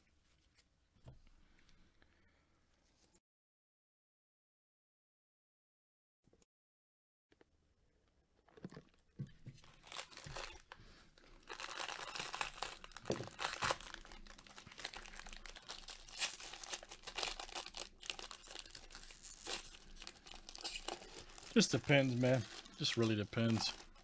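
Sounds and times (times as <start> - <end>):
shiny wrapper tearing and crinkling: 9.6 - 24.0.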